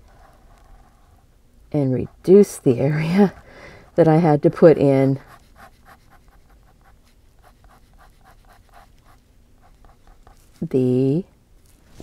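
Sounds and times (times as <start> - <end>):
pen scratching on paper: 5.2 - 10.6.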